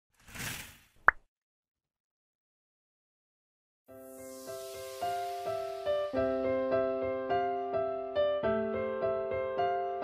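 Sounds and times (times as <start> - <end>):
soft whoosh: 4.0 - 6.2.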